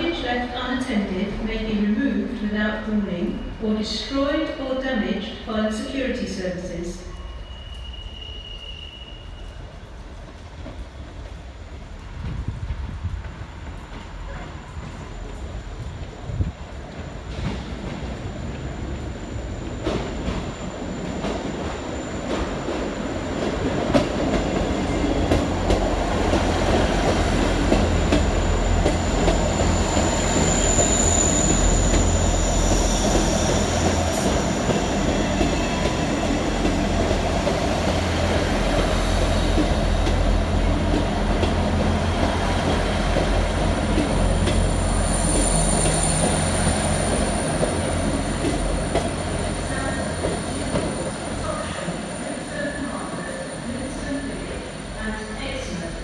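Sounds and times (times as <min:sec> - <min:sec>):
train engine and wheel rumble: 0:00.0 - 0:56.0
high wheel squeals: 0:07.1 - 0:09.7, 0:29.5 - 0:33.8.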